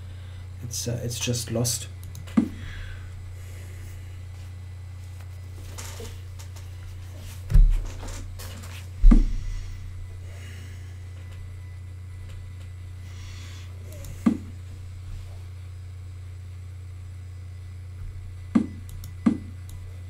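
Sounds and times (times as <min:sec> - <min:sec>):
steady low hum: 0:00.0 - 0:20.0
dull knocks: 0:09.0 - 0:09.4.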